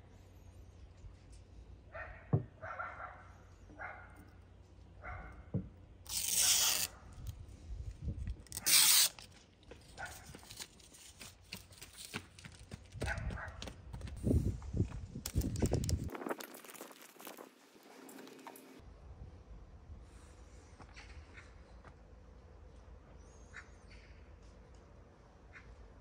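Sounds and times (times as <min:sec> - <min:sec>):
protective film ripping off: 0:06.1 - 0:07.0, 0:08.5 - 0:09.4.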